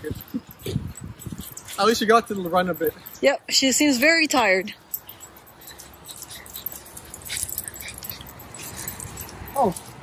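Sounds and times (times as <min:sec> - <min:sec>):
light ticks and jingles: 0:00.0 - 0:10.0.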